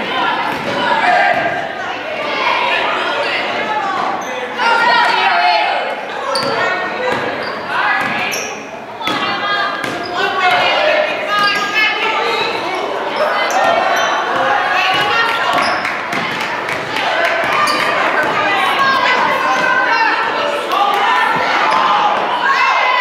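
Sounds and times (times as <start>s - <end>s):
voices echoing in gym: 0.0s - 23.0s.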